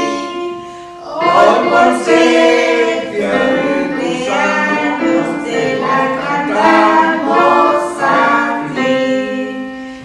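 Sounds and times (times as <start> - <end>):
women and girls singing: 0.0 - 9.7
digital piano: 0.0 - 10.0.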